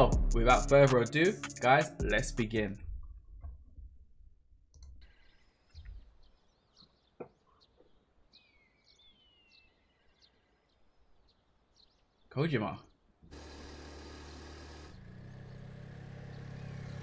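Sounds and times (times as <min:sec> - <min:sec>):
faint birds chirping: 0:04.7 - 0:13.3, 0:14.9 - 0:17.0.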